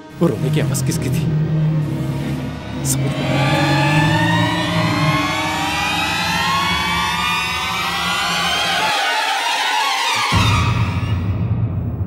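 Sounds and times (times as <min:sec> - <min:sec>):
low steady drone: 0:00.0 - 0:09.2
rising siren-like tones: 0:00.0 - 0:11.2.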